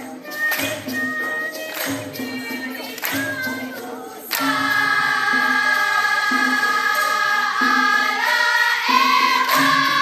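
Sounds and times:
chorus singing together: 0.0 - 10.0
percussion: 0.0 - 10.0
sharp percussion hit: 4.4 - 10.0.

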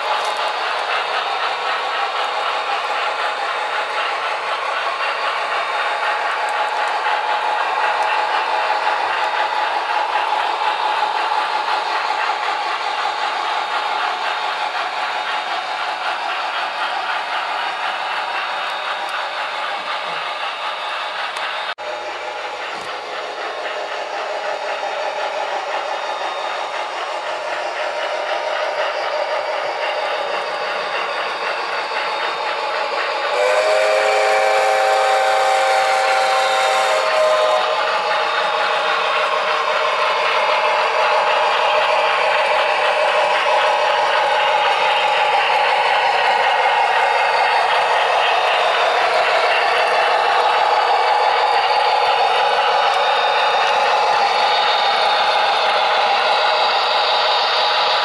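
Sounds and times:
model train running noise: 0.0 - 58.0
model train steam whistle: 33.2 - 38.5.

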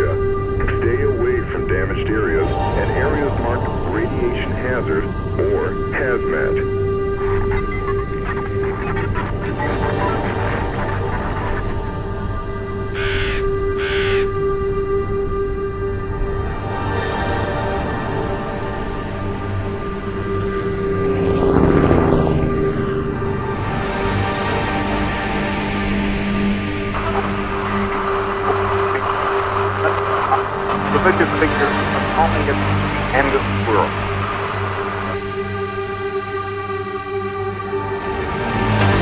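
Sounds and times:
low drone: 0.0 - 39.0
dark electronic music: 2.2 - 39.0
crow cawing: 13.0 - 14.3.

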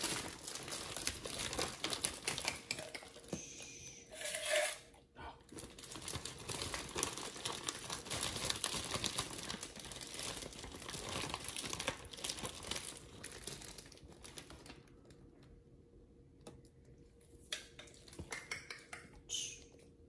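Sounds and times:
plastic bag crinkling: 0.0 - 2.8, 5.5 - 15.4.

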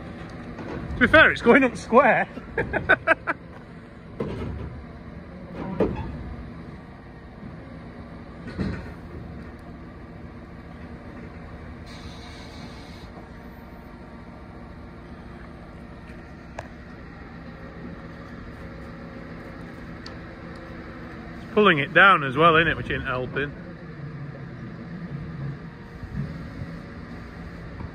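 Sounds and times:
heavy vehicle engine running: 0.0 - 27.9.

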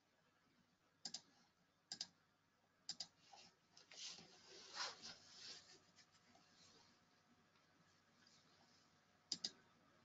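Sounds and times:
sharp clicks: 1.0 - 1.3, 1.9 - 2.2, 2.9 - 3.2, 9.3 - 9.6.

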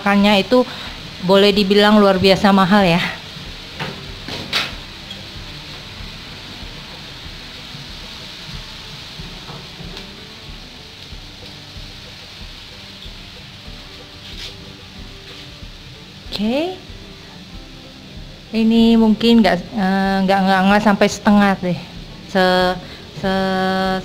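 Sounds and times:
food sizzling in a wok: 0.0 - 24.0.

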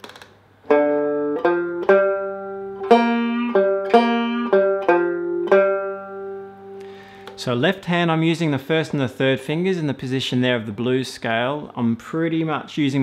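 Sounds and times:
banjo picking a blues lick: 0.6 - 7.3.

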